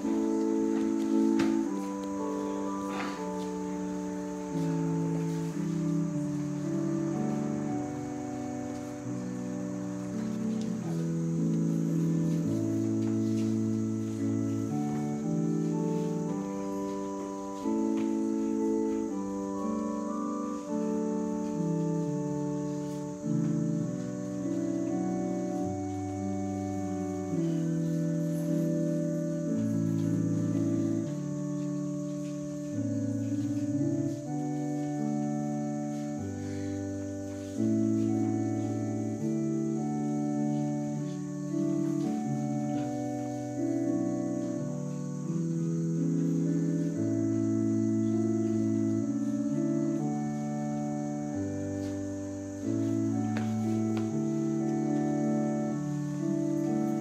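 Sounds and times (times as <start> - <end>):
slow organ chords: 0.0 - 57.0.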